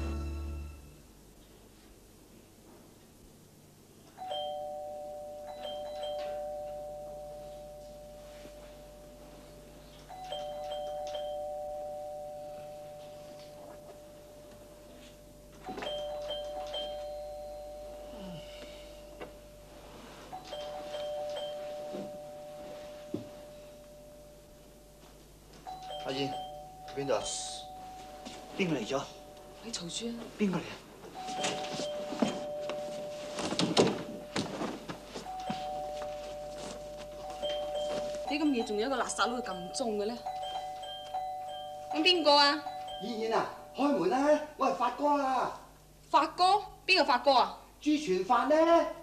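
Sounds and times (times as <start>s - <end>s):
two-tone doorbell chime: 4.1s - 30.0s, 31.1s - 44.2s
rustling movement: 4.8s - 26.9s, 27.6s - 43.7s.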